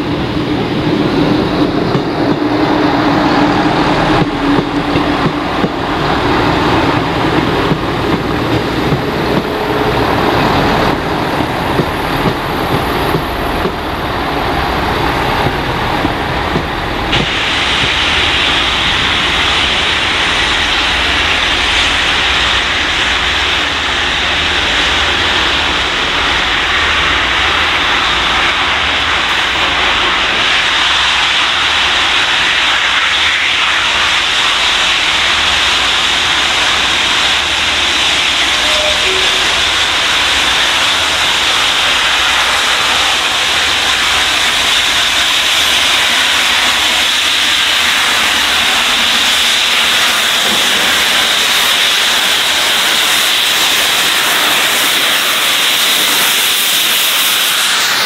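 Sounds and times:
loud hiss of escaping steam: 0.0s - 58.0s.

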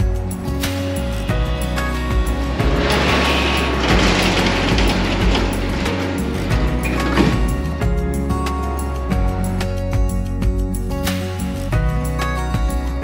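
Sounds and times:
background music: 0.0s - 13.0s
roll-up door rattling down: 1.9s - 8.0s.

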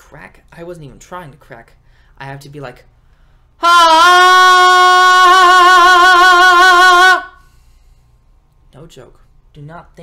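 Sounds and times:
man singing a long high note: 3.6s - 7.4s.

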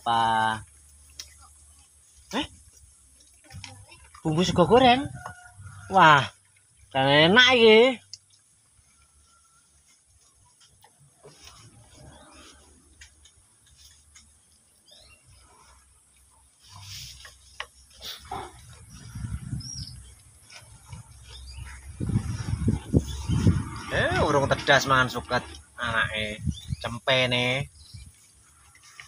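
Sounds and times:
goats chewing leaves: 0.1s - 29.0s
low rumbling: 18.2s - 27.0s.

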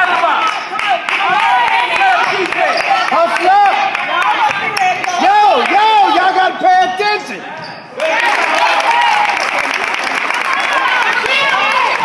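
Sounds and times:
sneakers squeaking on court: 7.5s - 8.0s.

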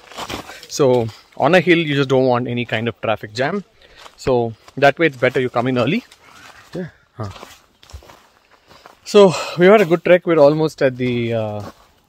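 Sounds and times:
footsteps on forest trail: 0.0s - 12.0s.

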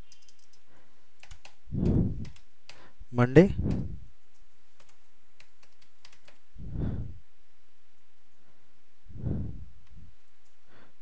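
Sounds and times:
computer keyboard keystrokes: 0.1s - 0.6s, 1.2s - 2.8s, 4.8s - 6.4s.

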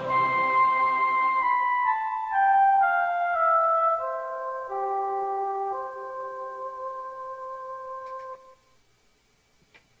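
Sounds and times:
held keyboard chord: 0.0s - 8.8s.

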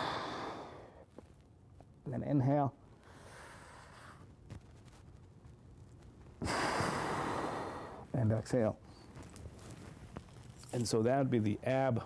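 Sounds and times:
person breathing loudly: 0.0s - 1.0s, 6.4s - 8.1s.

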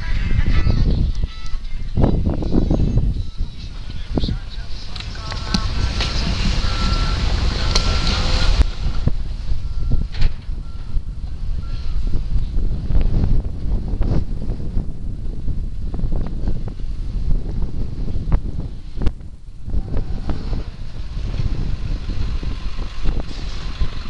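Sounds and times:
wind on microphone: 0.0s - 24.0s
reversing alarm beeping: 5.6s - 12.8s.

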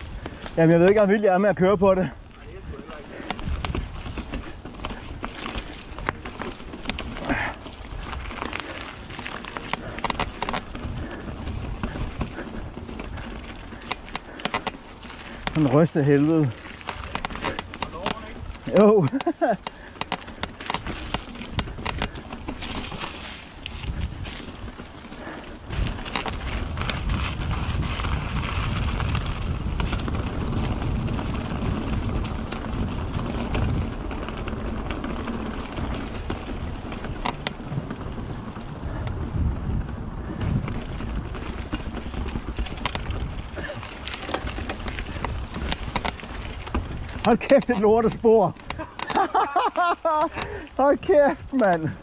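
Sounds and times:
bike rattling and knocking: 0.0s - 52.0s
bike tyres rumbling over dirt: 0.0s - 52.0s.

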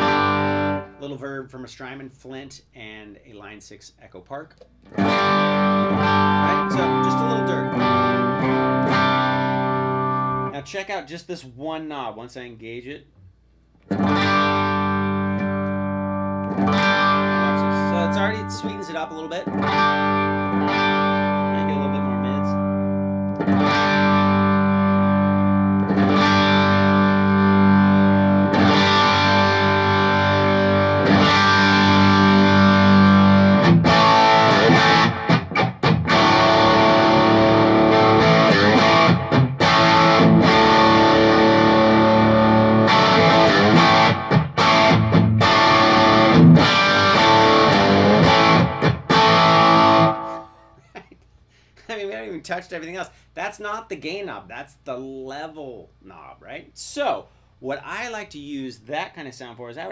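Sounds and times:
overdriven electric guitar chords: 0.0s - 1.0s, 4.8s - 10.5s, 13.9s - 50.8s.

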